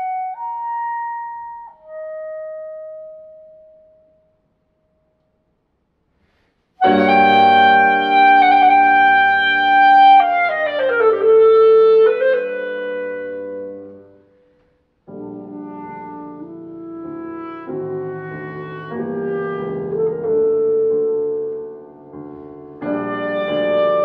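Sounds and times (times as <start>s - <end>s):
clarinet playing: 0.0s - 3.6s, 6.8s - 14.3s, 15.2s - 24.0s
piano playing: 0.0s - 4.4s, 6.8s - 14.4s, 15.0s - 24.0s.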